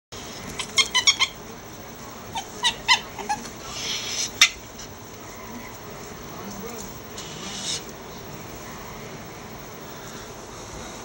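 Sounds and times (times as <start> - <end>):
ferrets chirping: 0.2 - 9.0.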